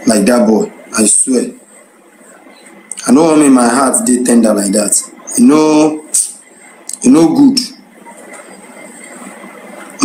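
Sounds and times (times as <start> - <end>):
faint high whine: 0.0 - 10.0.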